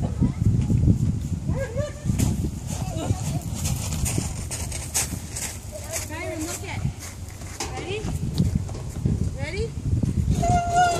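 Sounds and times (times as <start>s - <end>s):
toddler footsteps on metal grate: 2.2s - 9.3s.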